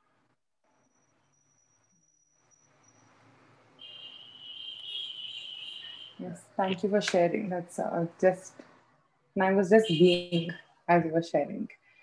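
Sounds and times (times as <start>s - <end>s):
faint background noise: 2.7s - 12.0s.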